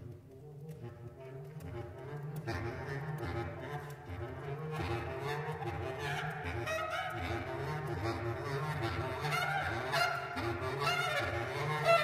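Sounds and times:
low bass clarinet notes: 0.0s - 12.0s.

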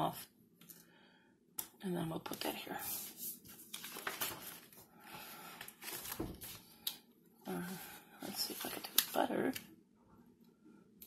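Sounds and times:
paper rustling: 2.8s - 6.8s, 7.6s - 9.3s.

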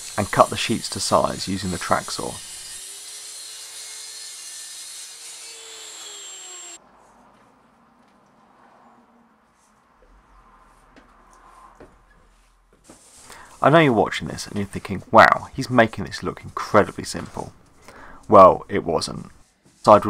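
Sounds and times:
saw cutting plywood: 0.0s - 6.8s
track saw motor whine: 5.5s - 6.8s.

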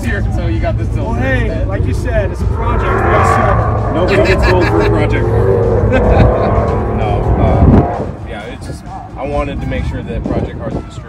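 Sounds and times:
vehicle engine rumbling: 0.0s - 10.2s
men talking: 0.0s - 11.0s
men laughing: 3.9s - 7.4s.

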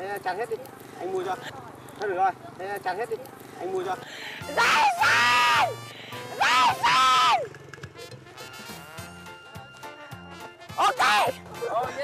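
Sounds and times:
background music: 4.1s - 12.0s
woman shrieking for joy: 4.5s - 7.4s.

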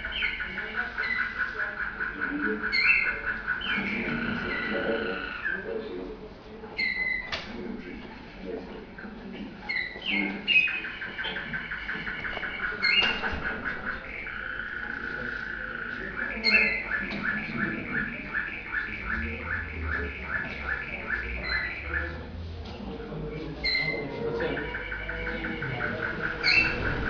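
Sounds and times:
canary song through tv speaker: 0.0s - 27.0s.

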